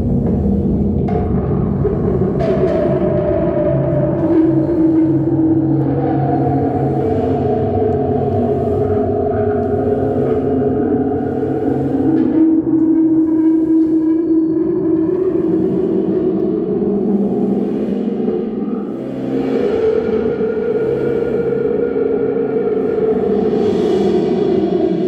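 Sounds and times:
modular synthesizer drone: 0:00.0 - 0:25.0.

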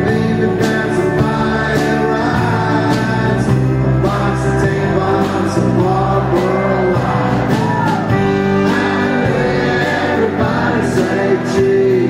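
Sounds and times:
live country band: 0:00.0 - 0:12.0
man singing: 0:00.0 - 0:12.0.

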